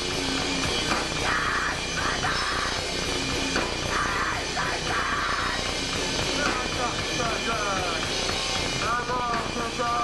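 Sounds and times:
distorted guitar roar: 0.0 - 10.0
fast low drum hits: 2.9 - 10.0.

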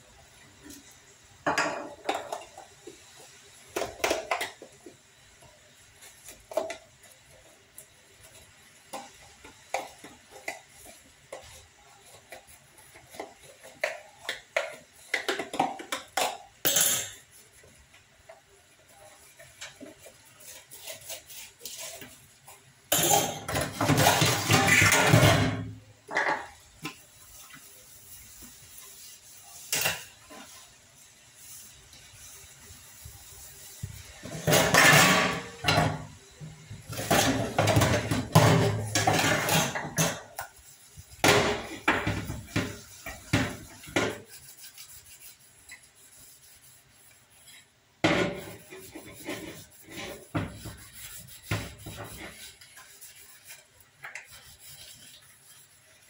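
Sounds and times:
dishes scrubbed in a steel sink: 0.3 - 56.0
pots and dishes clinking: 1.4 - 2.7, 8.9 - 17.4, 22.9 - 27.0, 29.6 - 30.5, 34.2 - 40.6, 41.2 - 44.3.

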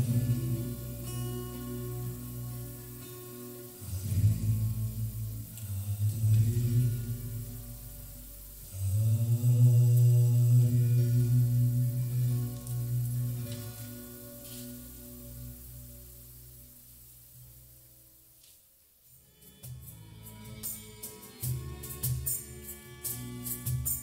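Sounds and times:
low voices chanting: 3.8 - 14.6.

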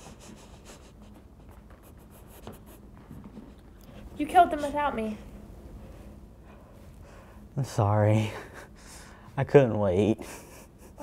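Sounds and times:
low steady room hum: 0.0 - 11.0
man laughing breathily: 8.2 - 9.2, 10.2 - 11.0.

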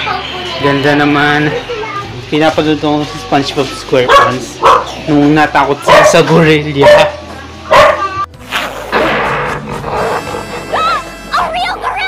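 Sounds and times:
background music: 2.3 - 12.0.

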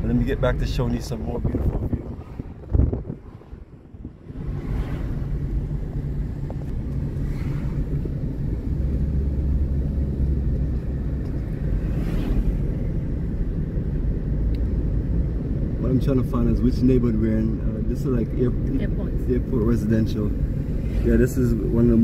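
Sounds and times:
car road and engine rumble: 0.0 - 22.0
hiss of passing traffic: 2.0 - 10.1, 10.9 - 14.4, 20.0 - 22.0.

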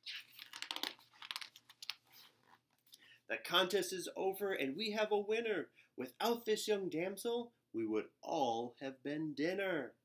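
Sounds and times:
paper page rustling: 0.0 - 2.8.

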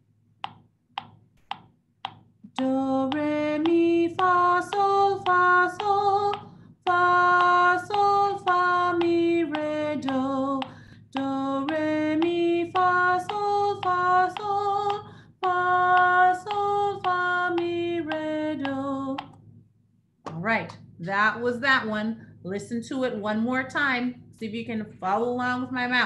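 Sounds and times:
woman singing solfege melody: 2.5 - 19.2.

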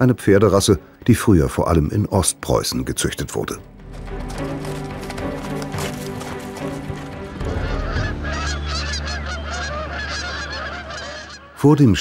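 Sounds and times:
sustained low music notes: 3.5 - 12.0
geese honking in flight: 7.3 - 11.6.

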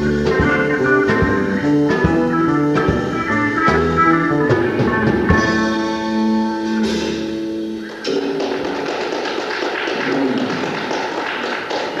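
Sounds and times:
audience clapping: 7.8 - 12.0.

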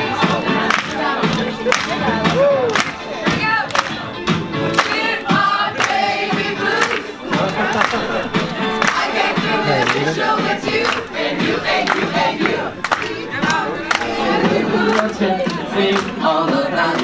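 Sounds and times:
crowd singing: 0.0 - 17.0
hand-clapping in time: 0.1 - 17.0.

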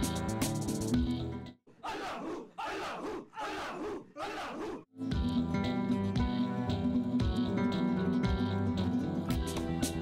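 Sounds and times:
group chanting: 1.8 - 4.9.

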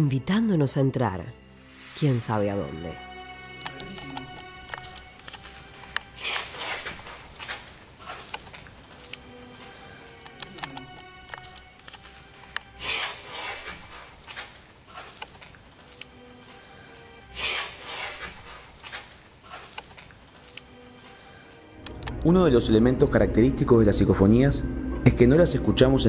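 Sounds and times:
faint eerie music: 0.0 - 26.0.

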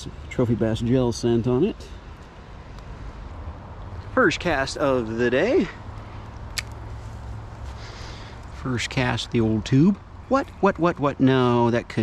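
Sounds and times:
wind: 0.0 - 12.0
sharp click: 6.5 - 6.8.

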